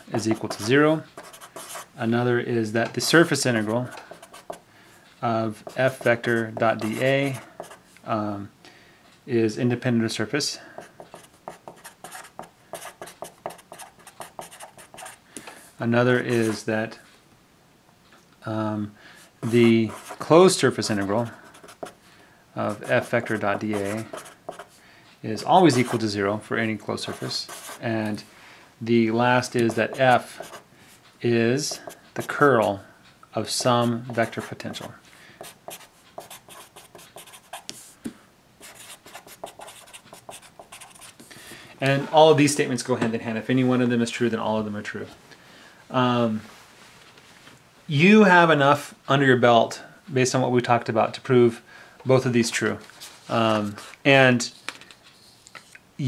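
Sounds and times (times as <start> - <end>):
marker writing on paper: 0.3 - 1.9, 3.3 - 4.6, 5.6 - 7.8, 10.9 - 15.2, 19.4 - 22.0, 22.8 - 24.7, 27.0 - 27.8, 29.6 - 30.6, 31.6 - 32.5, 33.6 - 37.9, 38.6 - 41.3.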